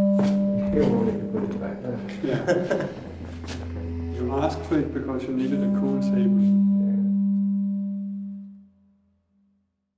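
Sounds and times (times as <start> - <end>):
sustained low musical tone: 0.0 - 9.0.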